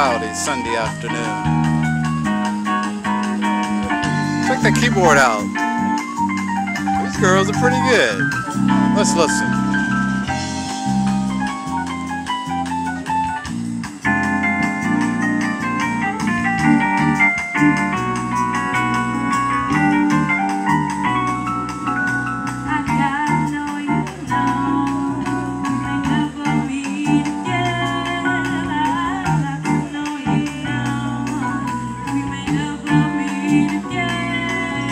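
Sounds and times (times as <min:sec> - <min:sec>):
electric keyboard chords: 0:00.0 - 0:34.9
jazz band playing: 0:00.0 - 0:34.9
moving bass line: 0:00.0 - 0:34.9.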